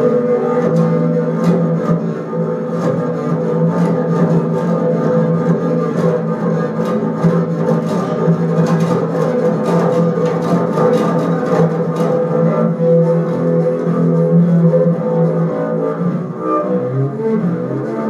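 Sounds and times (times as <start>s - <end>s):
bowed double bass drone: 0.0s - 18.0s.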